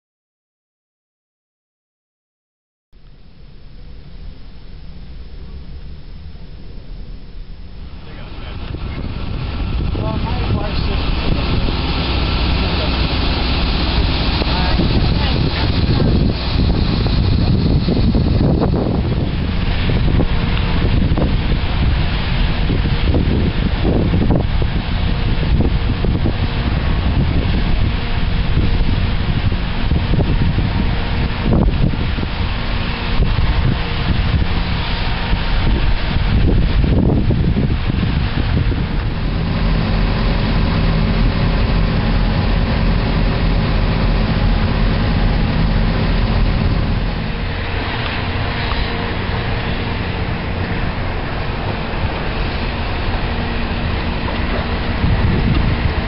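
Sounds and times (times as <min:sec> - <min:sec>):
steady low hum: 0:03.0 - 0:56.0
vehicle engine running: 0:03.0 - 0:56.0
wind on microphone: 0:03.2 - 0:56.0.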